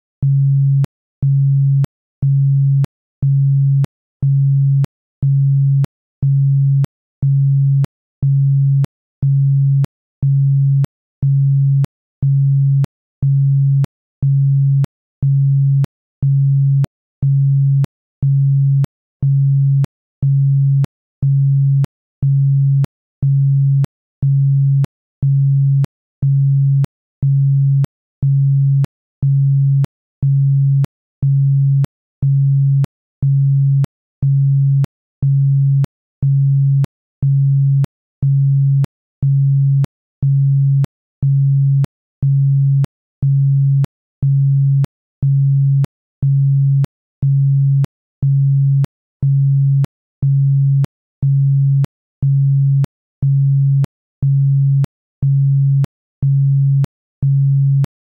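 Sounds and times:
pulsing low sine tone: 0:00.2 - 0:57.9.

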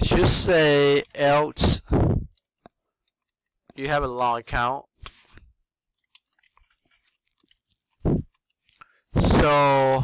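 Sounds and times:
computer keyboard and mouse clicks: 0:05.9 - 0:08.8.

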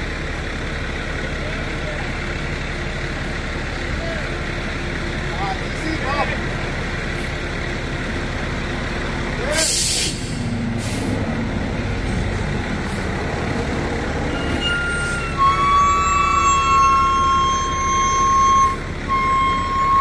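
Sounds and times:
diesel engine running: 0:00.0 - 0:20.0
air hissing out: 0:09.6 - 0:11.2.

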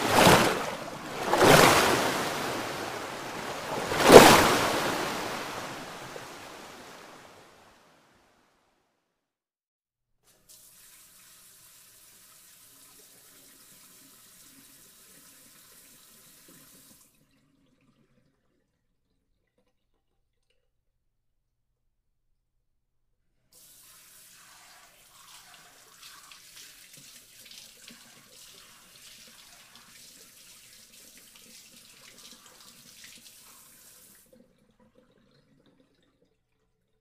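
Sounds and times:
water splashing in a tub: 0:00.0 - 0:07.6, 0:23.6 - 0:37.0.

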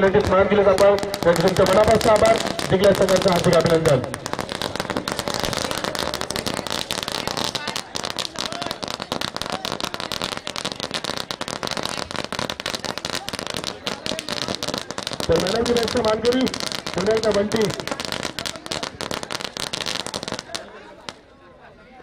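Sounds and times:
firecrackers crackling: 0:00.0 - 0:21.4.

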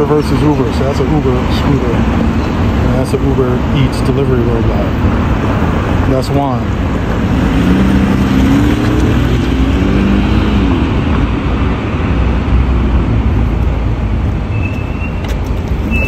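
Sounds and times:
cars passing: 0:00.0 - 0:16.0.

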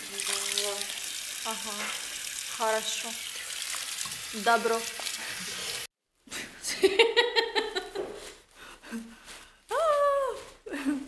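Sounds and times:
hand shower spraying water: 0:00.0 - 0:05.9
woman laughing: 0:06.6 - 0:08.3, 0:09.8 - 0:11.0.

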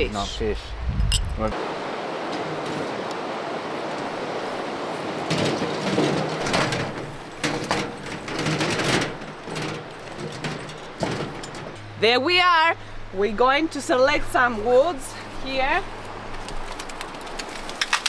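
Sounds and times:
cart rolling over rocky ground: 0:04.0 - 0:12.2, 0:16.4 - 0:18.0
clattering knocks: 0:05.2 - 0:12.0.

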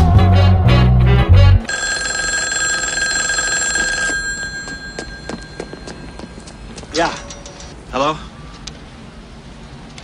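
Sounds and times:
high ringing tone: 0:01.7 - 0:07.8.

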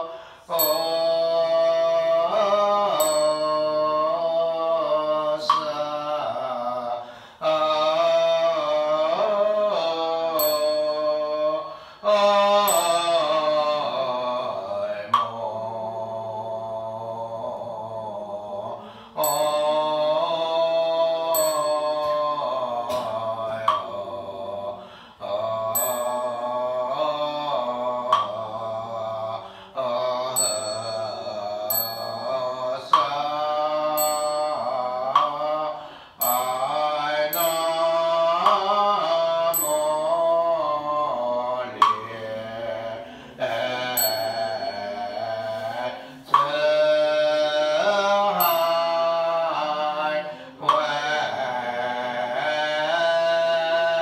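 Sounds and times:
group chanting: 0:00.0 - 0:54.0
sharp percussion strikes: 0:00.5 - 0:04.4, 0:10.2 - 0:15.4, 0:19.2 - 0:24.1, 0:25.7 - 0:28.6, 0:30.3 - 0:42.3, 0:43.4 - 0:49.8.

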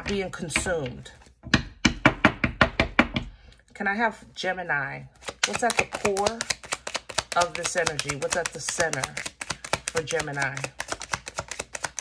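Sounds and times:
hand tapping on cards: 0:05.2 - 0:12.0.

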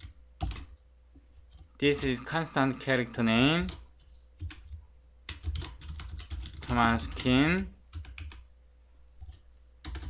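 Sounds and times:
computer keyboard keystrokes: 0:00.0 - 0:00.8, 0:03.6 - 0:08.4, 0:09.2 - 0:10.0.

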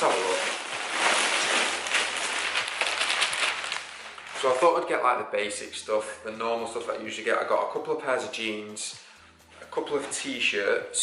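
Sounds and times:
plastic bag rustling: 0:00.0 - 0:04.9.

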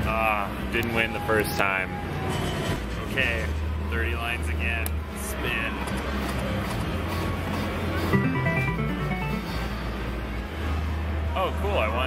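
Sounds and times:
slot machine electronic jingle: 0:08.1 - 0:09.8.

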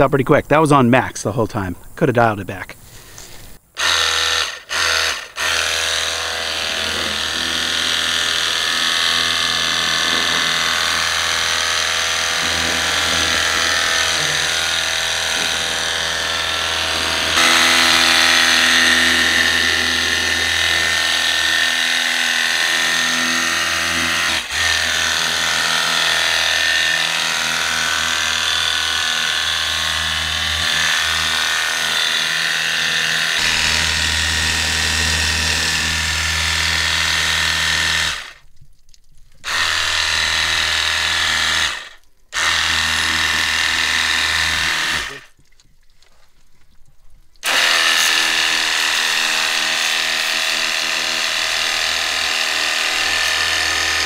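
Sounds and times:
power washer pump running: 0:03.8 - 0:38.4, 0:39.4 - 0:45.4, 0:47.4 - 0:54.0.

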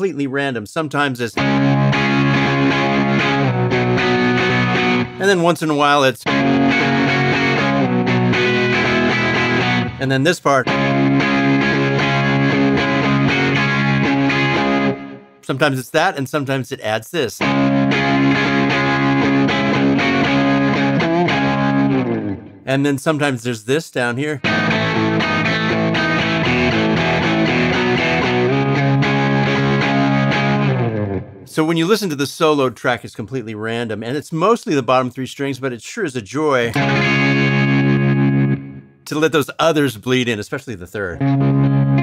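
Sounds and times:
electric guitar strumming chords: 0:01.4 - 0:05.4, 0:06.2 - 0:15.4, 0:17.4 - 0:22.7, 0:24.4 - 0:31.5, 0:36.7 - 0:39.0, 0:41.2 - 0:42.0.

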